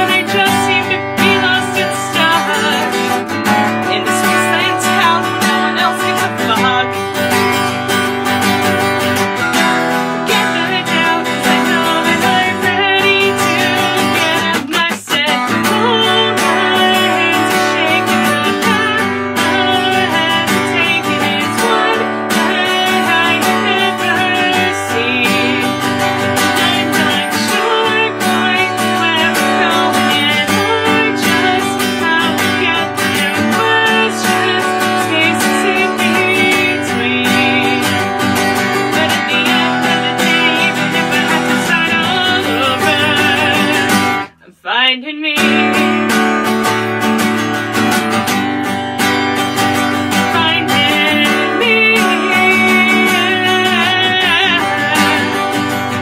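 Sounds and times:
acoustic guitar strumming chords: 0:00.0 - 0:56.0.

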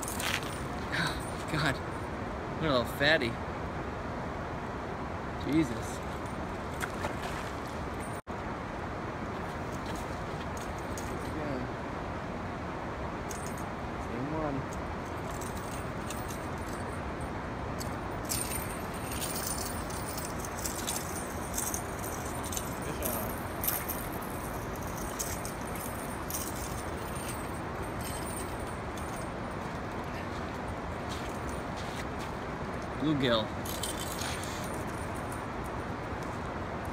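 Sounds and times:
fishing tackle clinking: 0:17.8 - 0:31.7.

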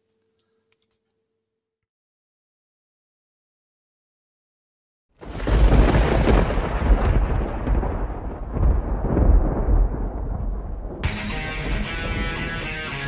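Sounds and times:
rolling thunder: 0:05.2 - 0:12.8.

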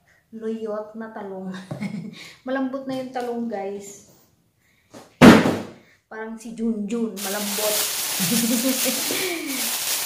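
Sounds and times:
loud thump: 0:05.2 - 0:05.8.

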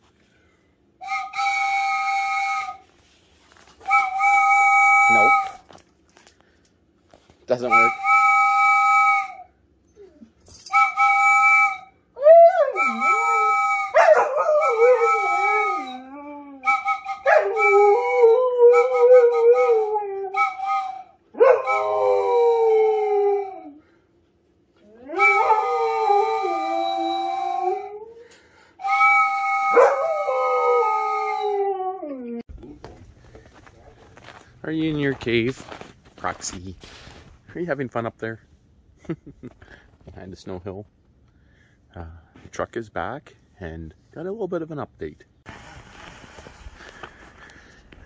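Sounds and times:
wooden whistle blasts: 0:01.0 - 0:03.1, 0:03.8 - 0:05.8, 0:07.5 - 0:09.6, 0:10.7 - 0:22.4, 0:25.2 - 0:31.6
dog howling: 0:12.2 - 0:20.7, 0:21.4 - 0:23.8, 0:24.8 - 0:28.2, 0:29.4 - 0:32.5.

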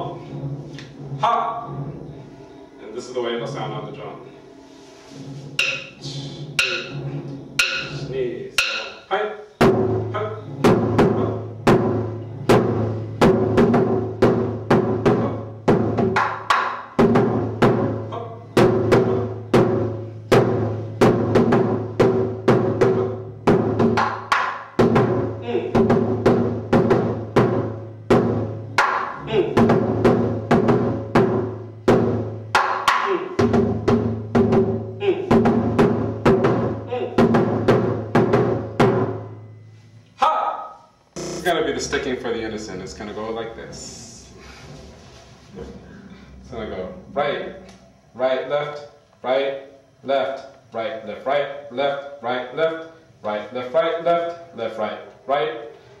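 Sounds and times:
taiko drum struck with sticks: 0:05.6 - 0:09.0, 0:09.6 - 0:39.6, 0:41.2 - 0:42.0.

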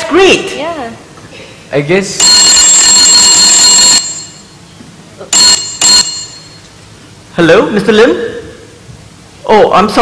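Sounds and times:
telephone bell ringing: 0:02.2 - 0:04.6, 0:05.4 - 0:06.6.

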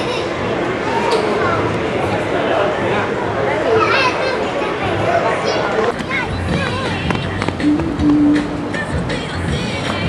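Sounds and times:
people's voices: 0:00.0 - 0:10.0
music: 0:06.1 - 0:10.0.

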